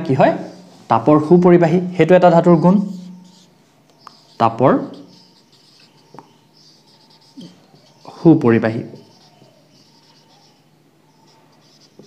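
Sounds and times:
marker scratching on whiteboard: 0:02.3 - 0:12.0.

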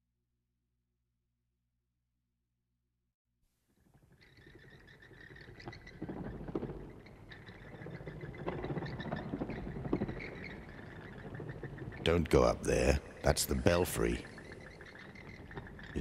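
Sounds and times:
bats squeaking and chittering: 0:04.0 - 0:16.0.

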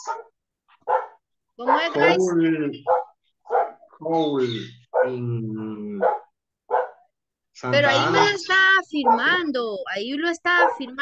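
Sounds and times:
dog barking: 0:00.0 - 0:03.9, 0:04.9 - 0:05.2, 0:06.0 - 0:07.1, 0:09.0 - 0:09.4, 0:10.5 - 0:11.0
voices: 0:01.6 - 0:03.0, 0:03.9 - 0:06.2, 0:07.1 - 0:11.0.

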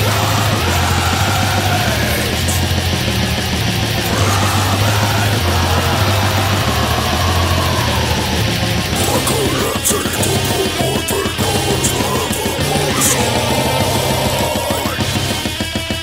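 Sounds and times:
low bass line: 0:00.0 - 0:15.5
heavy metal song: 0:00.0 - 0:16.0.

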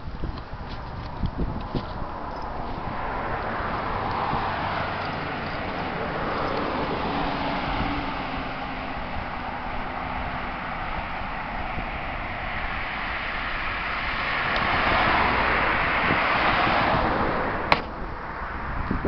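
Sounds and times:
road traffic hiss: 0:00.0 - 0:19.0
vehicle passing: 0:01.4 - 0:19.0.

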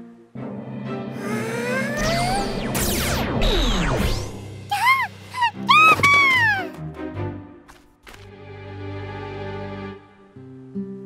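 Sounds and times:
background music: 0:00.0 - 0:11.0
cartoon creature whimpering squeals: 0:01.2 - 0:02.7, 0:04.7 - 0:06.8.

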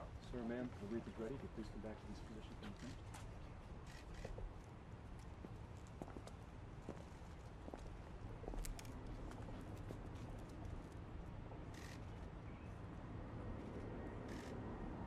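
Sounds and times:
footsteps on stone paving: 0:05.4 - 0:10.5.

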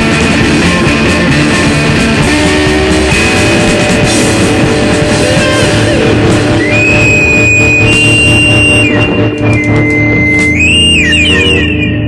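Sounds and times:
distorted electric guitar chord: 0:00.0 - 0:09.8
high whistling tone: 0:05.5 - 0:12.0.

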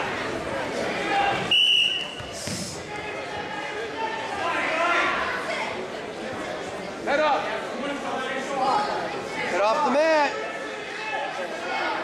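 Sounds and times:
crowd voices and shouts: 0:00.0 - 0:12.0
referee's whistle blast: 0:01.5 - 0:02.3.

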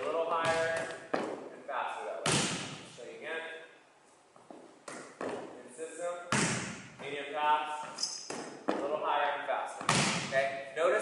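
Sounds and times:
volleyball thuds on gym floor: 0:00.4 - 0:01.5, 0:02.2 - 0:02.8, 0:04.8 - 0:05.5, 0:06.3 - 0:07.2, 0:09.8 - 0:10.4.

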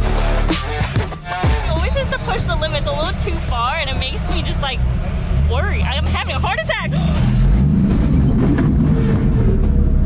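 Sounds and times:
background music: 0:00.0 - 0:07.7
vehicle engine low rumble: 0:00.0 - 0:10.0.

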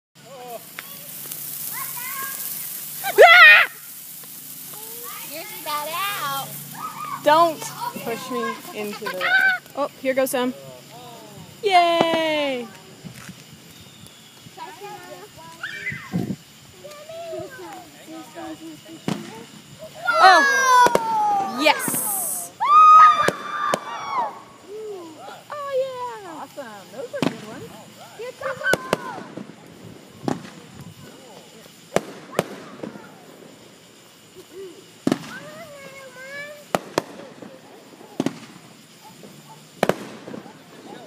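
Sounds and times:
firework fountain hissing: 0:00.2 - 0:41.0
quiet voices talking: 0:00.2 - 0:41.0
children calling out: 0:00.7 - 0:04.0, 0:04.7 - 0:10.0, 0:14.5 - 0:26.2, 0:28.1 - 0:29.8, 0:32.2 - 0:33.4
loud wavering shriek: 0:03.0 - 0:04.0
sharp crack: 0:20.8 - 0:21.2, 0:23.2 - 0:24.0, 0:31.9 - 0:33.0, 0:36.7 - 0:38.7, 0:39.8 - 0:40.6.

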